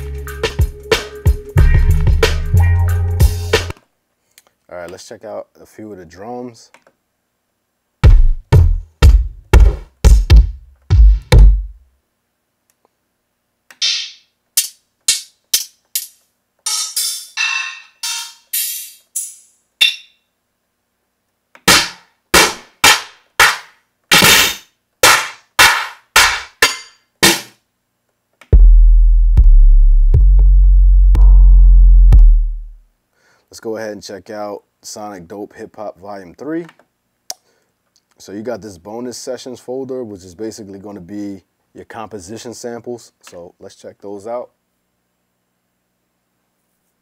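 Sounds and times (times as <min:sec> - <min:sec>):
hi-hats: 0:00.0 - 0:03.8, 0:18.0 - 0:20.0
deep kick drum boom: 0:08.0 - 0:11.8, 0:28.6 - 0:32.8
kick drum hits: 0:08.0 - 0:11.8, 0:32.0 - 0:32.7
percussion hits: 0:08.0 - 0:11.8, 0:13.8 - 0:20.2, 0:21.6 - 0:27.6.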